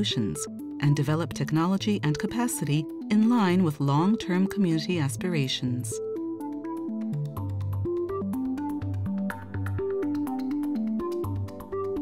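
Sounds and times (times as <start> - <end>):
synthesizer melody: 0.0 - 12.0.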